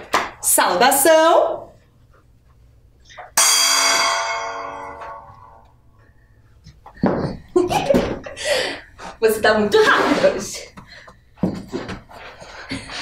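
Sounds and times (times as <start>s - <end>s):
gong ringing: 3.4s - 6.0s.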